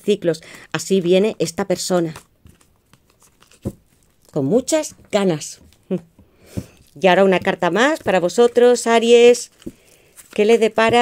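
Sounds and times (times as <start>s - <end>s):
cards rustling and clicking: 2.0s - 5.0s, 6.6s - 11.0s.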